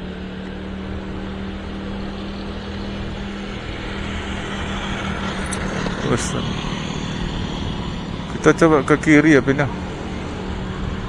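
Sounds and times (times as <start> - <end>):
low drone: 0.0 - 11.0
motorbike engine running: 0.0 - 11.0
road and wind noise: 0.0 - 11.0.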